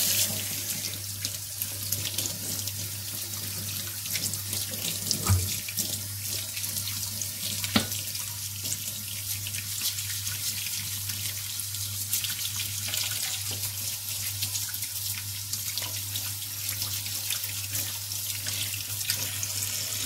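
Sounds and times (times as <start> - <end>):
tap running into metal sink: 5.1 - 5.8, 7.6 - 8.0.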